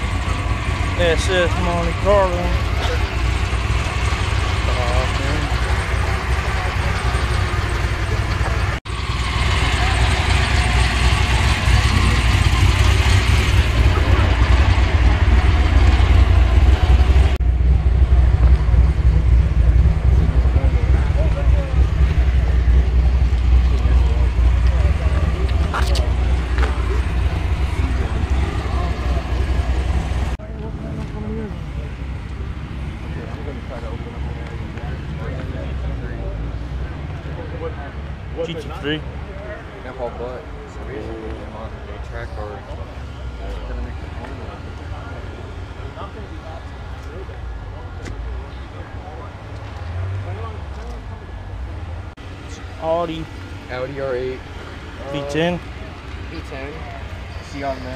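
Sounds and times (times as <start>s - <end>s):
people talking: 0.0s - 8.8s, 9.5s - 14.6s, 20.1s - 57.9s
steady low rumble: 0.0s - 38.3s.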